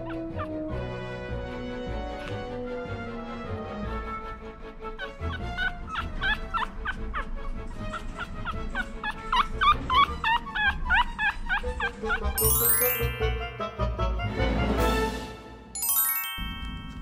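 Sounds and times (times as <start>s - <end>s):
puppy squeaking: 5.0s - 13.4s.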